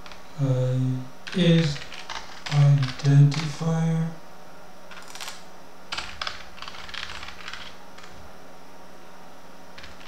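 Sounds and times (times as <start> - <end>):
faint steady hum: 0.0 - 10.0
keyboard typing: 1.2 - 3.6, 4.9 - 8.2, 9.8 - 10.0.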